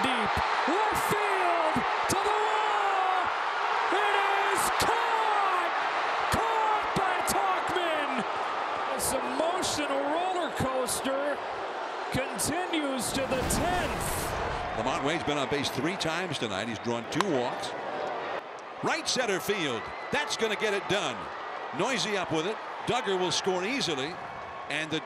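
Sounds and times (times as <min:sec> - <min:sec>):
stadium crowd cheering: 0:00.0 - 0:25.0.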